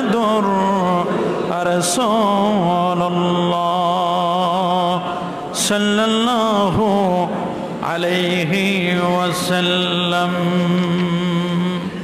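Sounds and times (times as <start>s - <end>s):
man chanting melodically: 0.0s - 12.0s.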